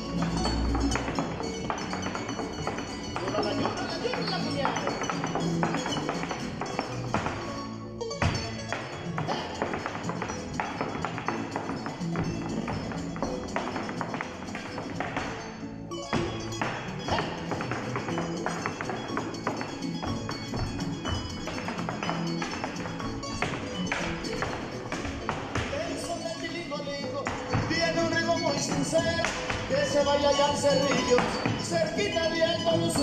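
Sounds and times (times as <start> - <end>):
folk music: 0.0 - 33.0
heeled boots tapping on stage: 0.0 - 33.0.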